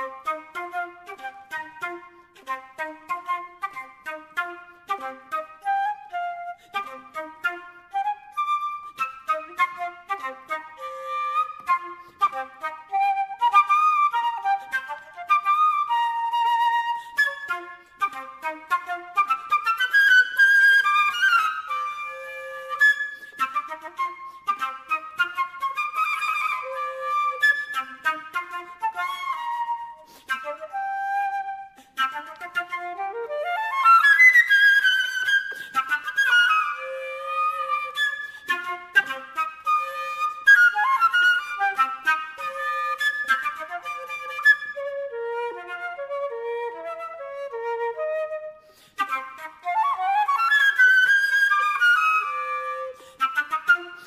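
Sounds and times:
solo flute fast passage: 0.0s - 54.0s.

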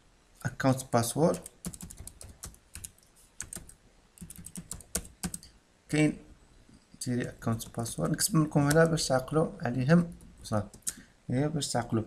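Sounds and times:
person speaking: 0.4s - 2.3s, 3.5s - 6.3s, 7.0s - 12.0s
typing on computer keyboard: 1.3s - 5.5s.

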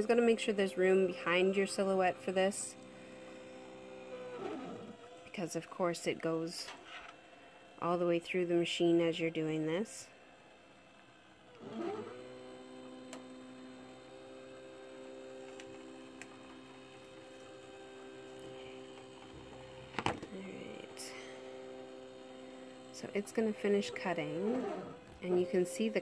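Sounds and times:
cutting machine motor humming: 0.0s - 26.0s.

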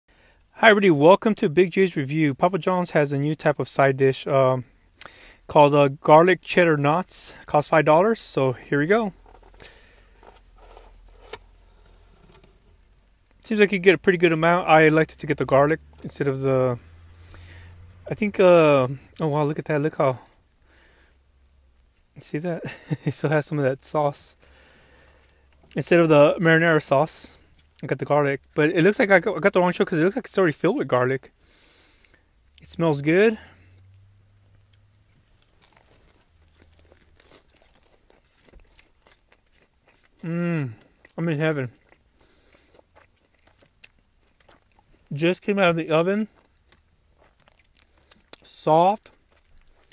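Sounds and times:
faint chewing: 33.4s - 49.9s
mouth clicks and crackles: 34.5s - 45.2s, 46.2s - 49.9s.

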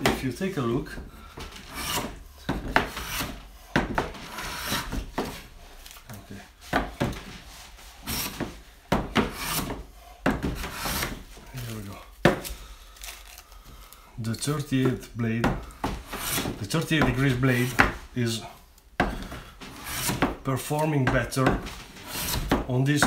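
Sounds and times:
hand plane cutting wood: 0.0s - 5.8s, 6.6s - 12.5s, 14.5s - 18.4s, 19.0s - 23.0s.

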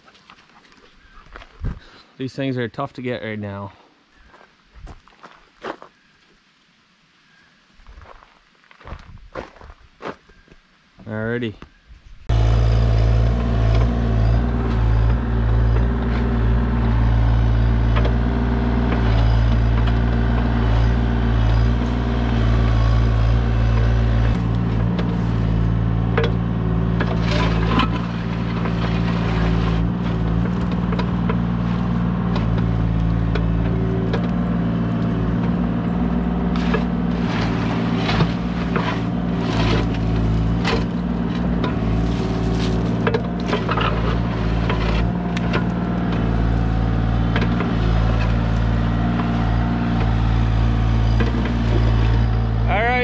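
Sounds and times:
excavator diesel engine running: 12.3s - 53.0s
bucket scraping on stones: 27.0s - 31.3s, 36.5s - 45.2s.

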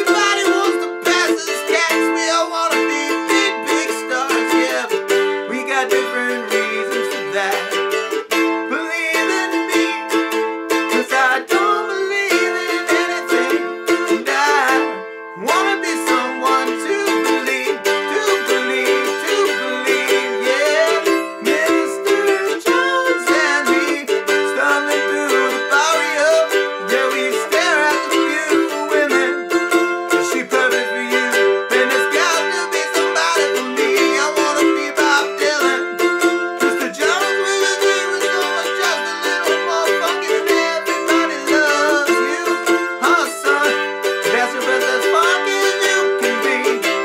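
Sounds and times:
man singing: 0.0s - 47.0s
mandolin strumming: 0.0s - 47.0s.

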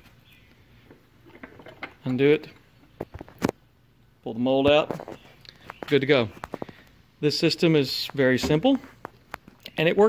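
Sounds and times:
handling noise at workbench: 0.9s - 3.6s, 4.6s - 6.8s, 8.0s - 9.6s.

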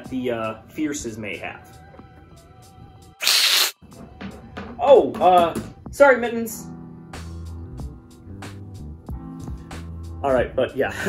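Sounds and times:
faint background music: 0.0s - 3.2s, 3.8s - 11.0s
sharp hiss: 3.2s - 3.8s.

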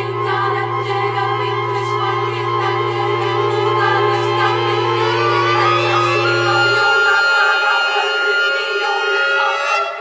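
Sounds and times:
strings and clarinets: 0.0s - 10.0s
women's choir singing: 0.0s - 10.0s.

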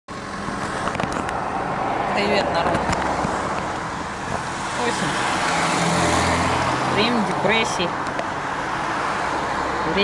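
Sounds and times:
car engine and road rumble: 0.1s - 10.0s.

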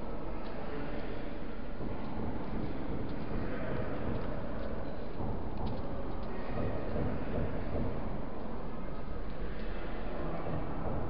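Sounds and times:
faint indistinct voices: 0.0s - 11.0s
visitors moving about: 0.0s - 11.0s.

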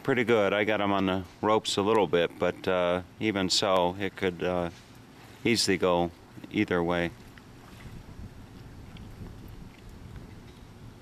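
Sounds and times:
wind rumble on microphone: 7.1s - 11.0s.

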